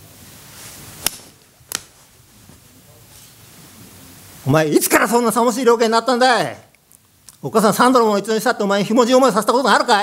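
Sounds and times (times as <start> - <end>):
faint room noise: 0.0 - 10.0.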